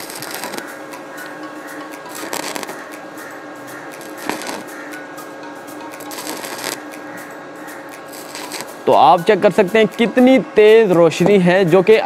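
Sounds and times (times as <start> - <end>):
welding arc crackling: 0.0 - 1.4, 2.0 - 4.9, 6.0 - 6.9, 7.7 - 9.2.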